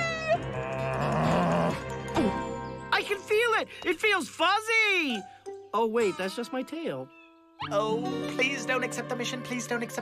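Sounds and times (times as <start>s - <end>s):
background music with low notes: 0.0s - 10.0s.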